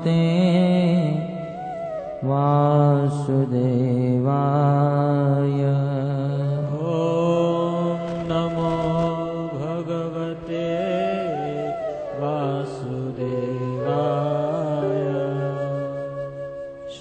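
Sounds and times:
man chanting in long held notes: 0.0 - 17.0.

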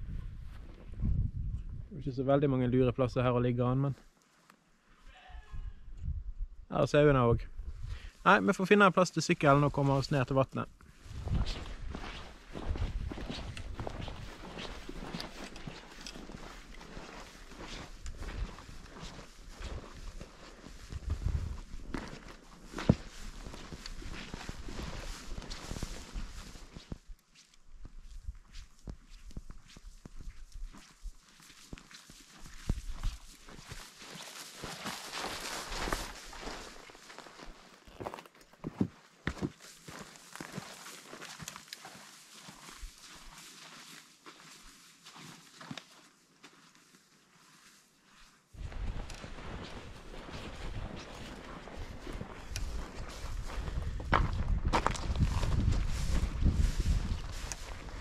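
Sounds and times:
wind buffeting microphone: 0.0 - 2.0, 51.8 - 58.0
footsteps through grass and stones: 0.1 - 1.8, 7.7 - 58.0.

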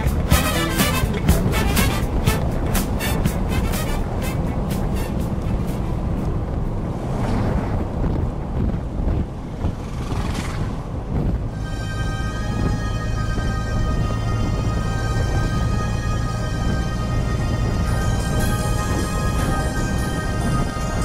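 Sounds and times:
background music with steady beat: 0.0 - 6.9, 11.6 - 21.0
road and engine noise in vehicle: 0.0 - 21.0.

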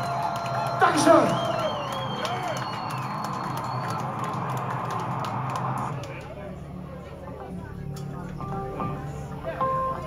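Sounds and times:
crowd shouts: 0.0 - 5.4
warbling whistle: 1.3 - 4.5.

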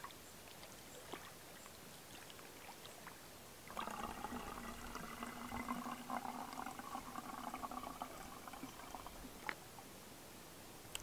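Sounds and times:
person gulping: 3.7 - 9.2.

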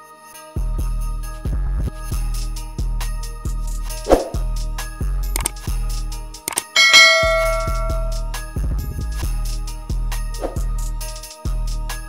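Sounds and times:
bright bell ding: 6.5 - 8.4.

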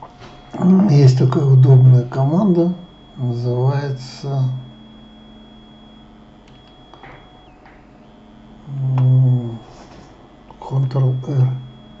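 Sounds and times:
faint high-pitched whine: 0.0 - 12.0
low steady hum: 0.0 - 12.0
faint irregular clicks: 6.4 - 7.8.

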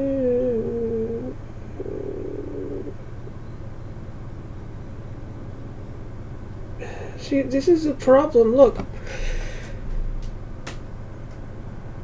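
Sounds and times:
woman humming: 0.0 - 3.0
low background hum: 0.0 - 12.0.

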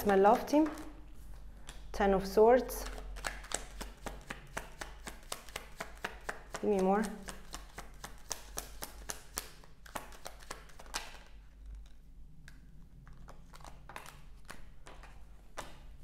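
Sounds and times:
cards shuffled by hand: 2.7 - 15.9.

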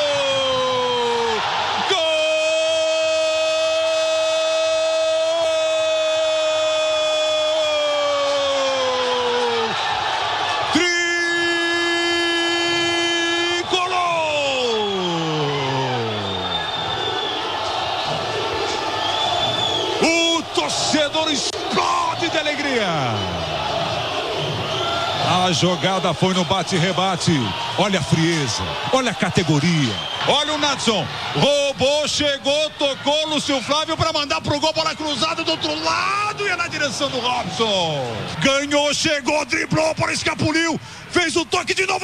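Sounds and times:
crowd noise: 0.0 - 42.0.

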